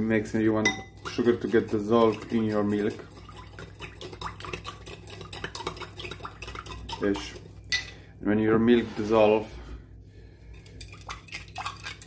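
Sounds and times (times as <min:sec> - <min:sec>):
spoon stirring in glass bowl: 0:00.6 - 0:08.0, 0:10.5 - 0:12.0.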